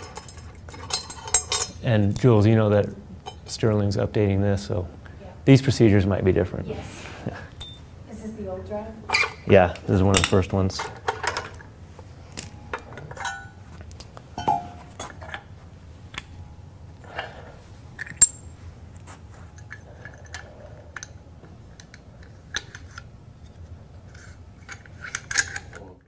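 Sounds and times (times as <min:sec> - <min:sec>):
metal parts clicking and clinking: 0:00.0 - 0:02.3, 0:07.5 - 0:07.9, 0:10.1 - 0:11.6, 0:12.3 - 0:13.5, 0:18.0 - 0:18.6, 0:24.1 - 0:25.9.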